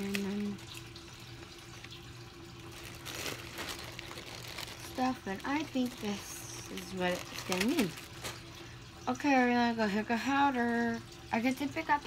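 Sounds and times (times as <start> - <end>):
plastic bag crinkling: 0.0 - 8.9
slime squishing: 2.6 - 8.4.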